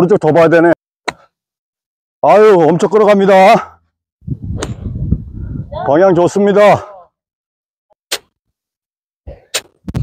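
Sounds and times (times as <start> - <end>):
wind buffeting a microphone: 4.2 - 6.0.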